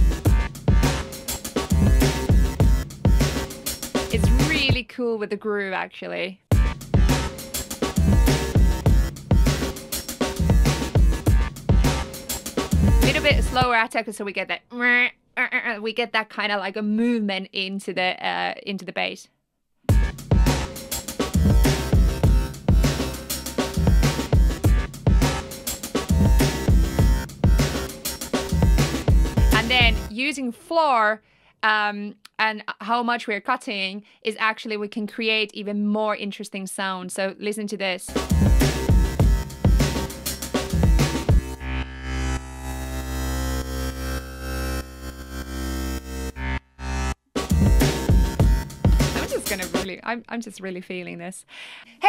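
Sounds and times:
electronic drum loop: 0.0s - 4.8s, 6.5s - 13.7s, 19.9s - 30.1s, 38.1s - 41.6s, 47.4s - 50.0s
gated bass line: 0.0s - 4.8s, 6.5s - 13.7s, 19.9s - 30.1s, 38.1s - 49.9s.

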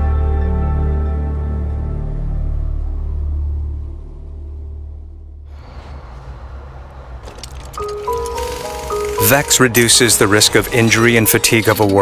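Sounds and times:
music: 0.0s - 6.0s, 7.4s - 12.0s
cinematic bass drone: 1.3s - 12.0s.

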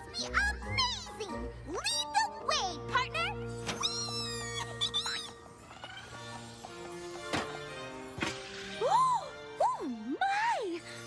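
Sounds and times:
background music: 0.0s - 11.0s
cartoon character squealing: 3.8s - 6.3s.

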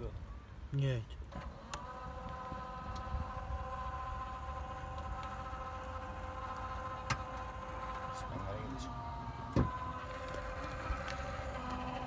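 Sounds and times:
car mechanical hum and rumble: 0.0s - 12.0s.

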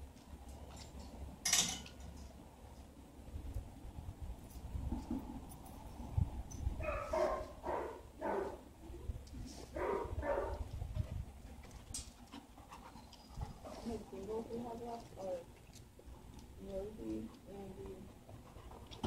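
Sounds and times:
dogs barking: 6.8s - 8.6s, 9.8s - 10.7s.

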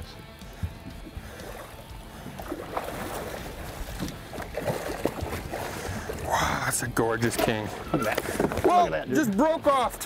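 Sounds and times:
water splashing and sloshing: 0.2s - 9.1s.

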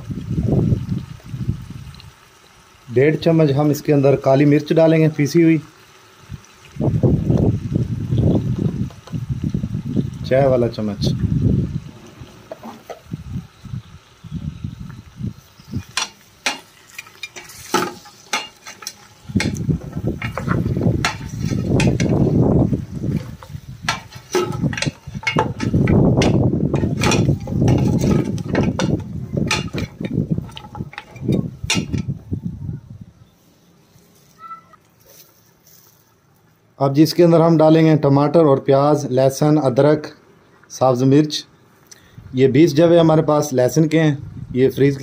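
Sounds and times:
metal ladle clinking and scraping pot: 15.8s - 22.3s, 23.1s - 32.1s.

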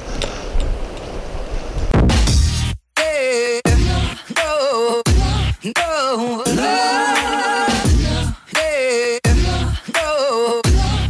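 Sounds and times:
wind buffeting microphone: 0.0s - 2.0s.

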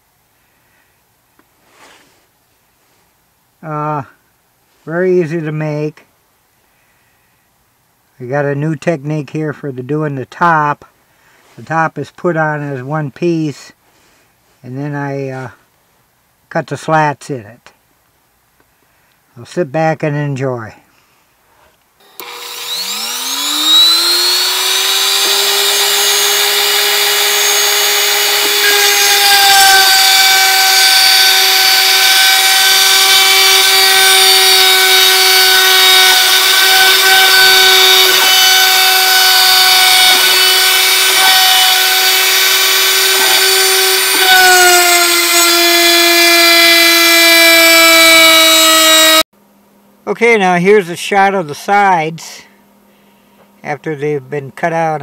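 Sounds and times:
router spindle whining: 22.0s - 49.2s
router bit cutting wood: 22.0s - 49.3s.

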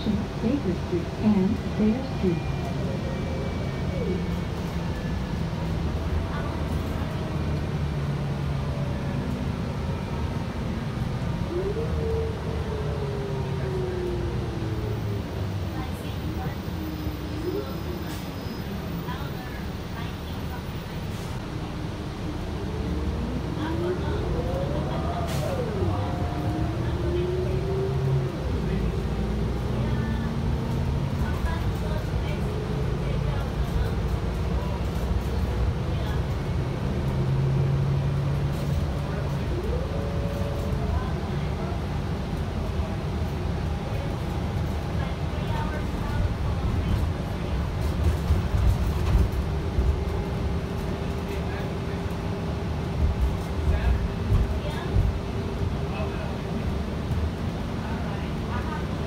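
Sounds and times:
bus engine rumble and whine: 0.0s - 59.0s.

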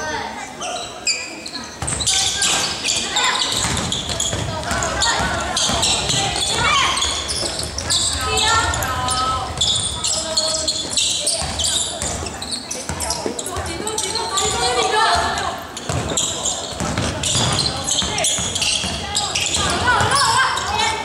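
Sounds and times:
voices calling out: 0.0s - 21.0s.

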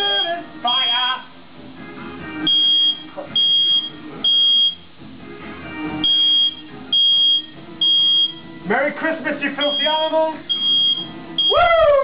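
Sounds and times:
smoke alarm beeping: 0.0s - 1.1s, 2.5s - 4.8s, 6.0s - 8.5s, 9.6s - 11.6s
faint background music: 0.0s - 12.0s.

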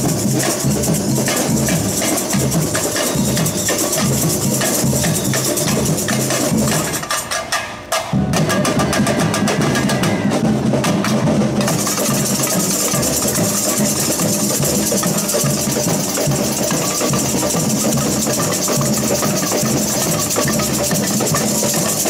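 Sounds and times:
shaker rattle: 0.0s - 7.1s, 11.6s - 22.0s
samba percussion band: 0.0s - 22.0s.

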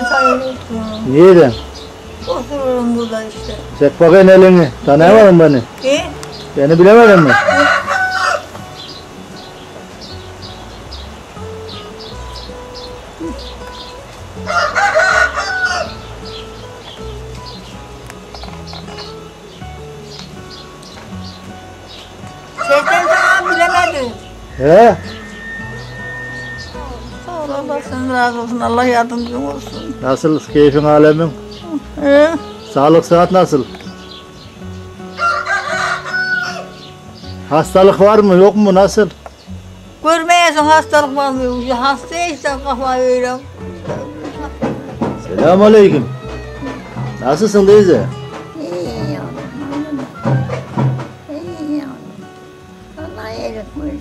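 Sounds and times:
rooster crowing: 0.0s - 0.6s, 7.0s - 8.7s, 14.4s - 16.0s, 22.6s - 24.2s, 24.9s - 27.0s, 35.0s - 36.8s, 45.8s - 47.8s
small birds chirping: 0.0s - 54.0s.

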